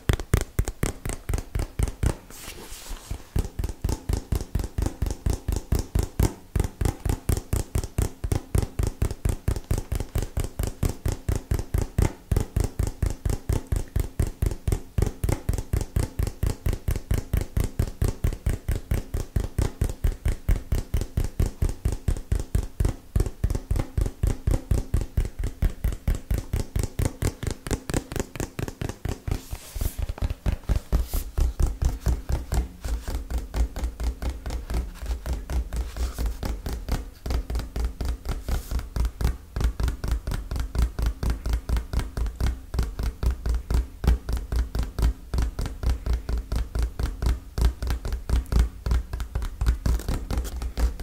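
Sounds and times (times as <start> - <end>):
fingertips tapping cardboard box: 0.0 - 51.0.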